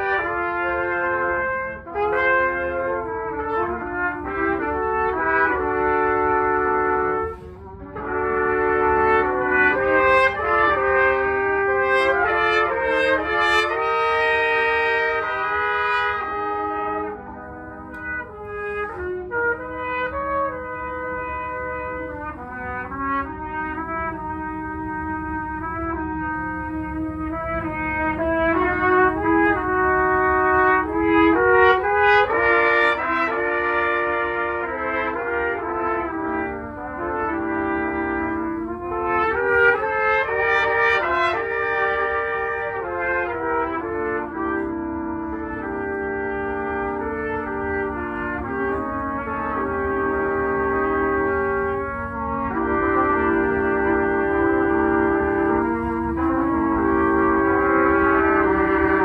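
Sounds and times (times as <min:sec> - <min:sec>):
trumpets playing in harmony: 0:00.0 - 0:59.0.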